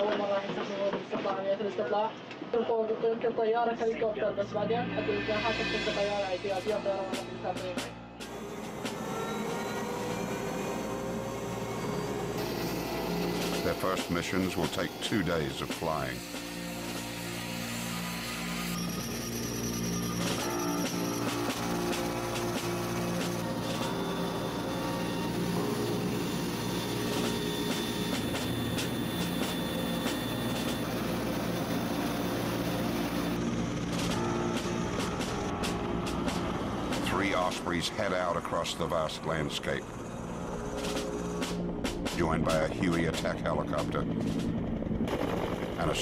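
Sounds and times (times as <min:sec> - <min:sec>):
background music with held chords: 0:04.1 - 0:45.2
aircraft engines and rotors droning: 0:04.5 - 0:46.0.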